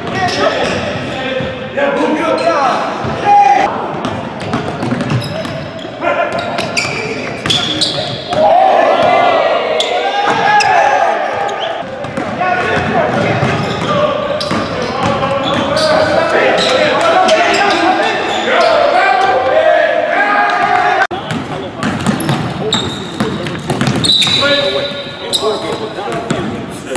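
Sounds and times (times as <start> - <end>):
basketballs bouncing on wooden floor: 3.9 - 5.7, 11.8 - 16.2, 20.6 - 24.6
players calling out: 5.1 - 26.9.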